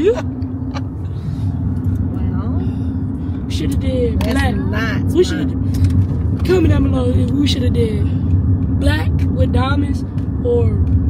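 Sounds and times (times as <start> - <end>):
car interior rumble: 0.0 - 11.0.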